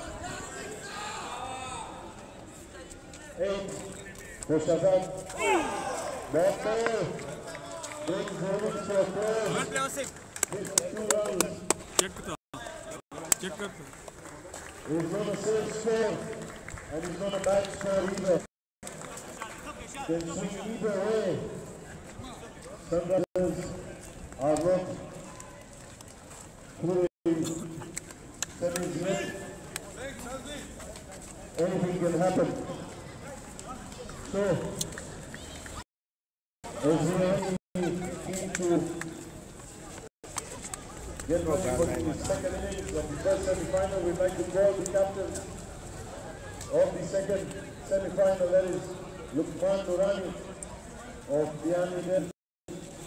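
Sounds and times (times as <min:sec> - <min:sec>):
men talking and calling out: 0:00.0 - 0:14.0, 0:36.6 - 0:39.3, 0:40.8 - 0:52.3.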